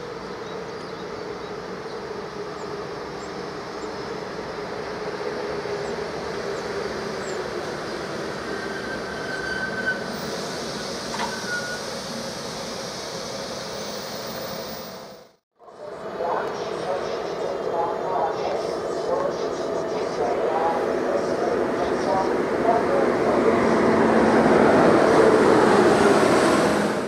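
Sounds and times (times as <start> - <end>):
electric train rumbling: 0.0 - 27.0
brake squeals: 8.4 - 12.1.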